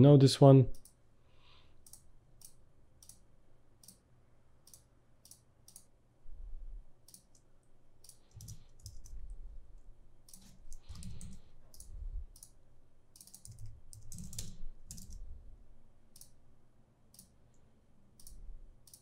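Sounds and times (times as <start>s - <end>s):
mouse clicks: 4.6s - 5.9s
keyboard keystrokes: 8.1s - 9.2s, 13.2s - 15.2s.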